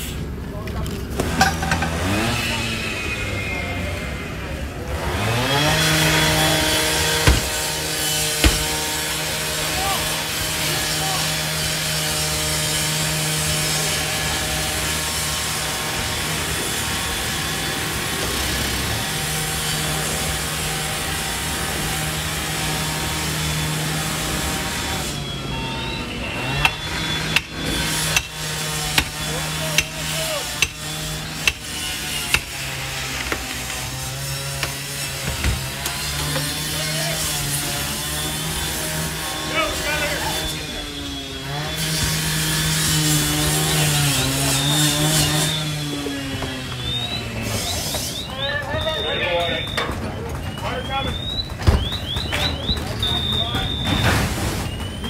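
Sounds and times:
chainsaw cutting: 0:01.0 - 0:49.7
sharp knocks: 0:07.0 - 0:09.1.

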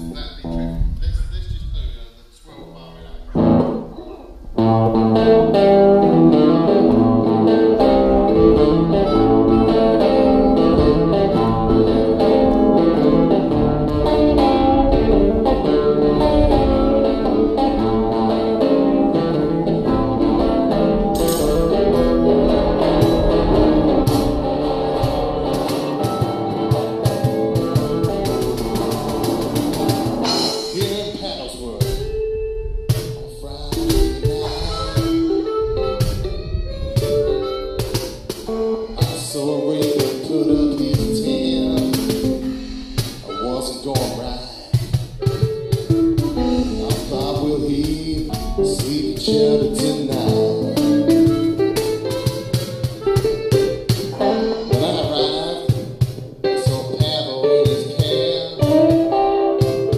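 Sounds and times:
electric guitar blues: 0:00.0 - 0:01.0, 0:02.6 - 0:59.9
drum kit: 0:03.3 - 0:59.9.

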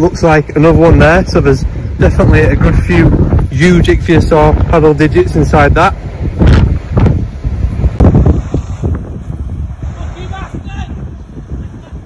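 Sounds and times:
wind gusting on microphone: 0:00.0 - 0:12.0.

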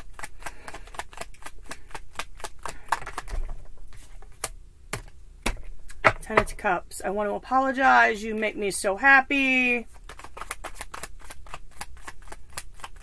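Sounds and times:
cards being shuffled: 0:00.0 - 0:05.7, 0:09.9 - 0:13.0.

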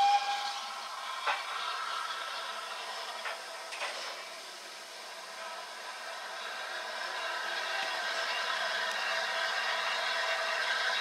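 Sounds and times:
steam hissing from locomotive: 0:00.0 - 0:11.0.

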